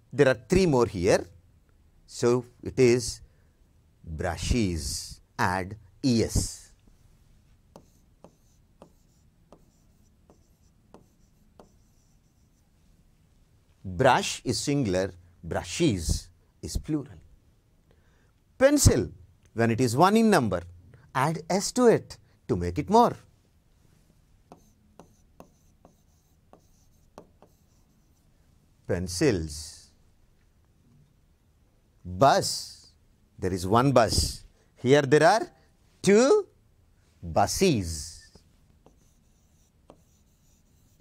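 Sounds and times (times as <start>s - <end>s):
pen tapping on board: 7.7s - 11.9s, 24.5s - 27.7s, 39.8s - 40.2s.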